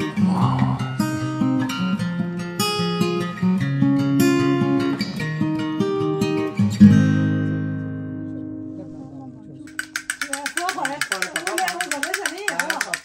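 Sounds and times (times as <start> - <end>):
acoustic guitar music: 0.0 - 10.2
rapid even clicking: 9.7 - 13.0.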